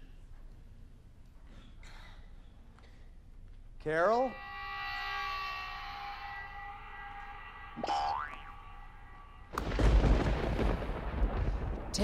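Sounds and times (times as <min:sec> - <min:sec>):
rising boing: 0:07.8 - 0:08.6
rumbling explosion-like crash: 0:09.5 - 0:12.0.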